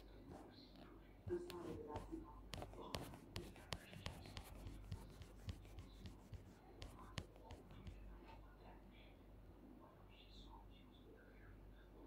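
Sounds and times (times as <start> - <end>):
low steady hum: 0.0 - 12.0
fingertip tapping on touchscreen: 1.3 - 8.1.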